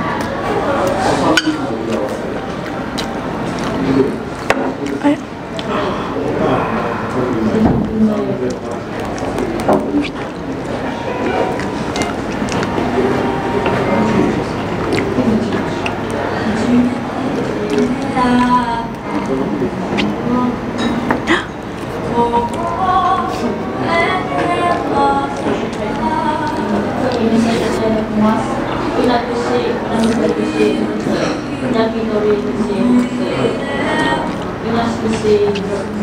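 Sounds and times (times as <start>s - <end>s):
people talking: 0.0s - 36.0s
utensils clinking against dishes: 1.1s - 2.0s, 30.0s - 33.5s.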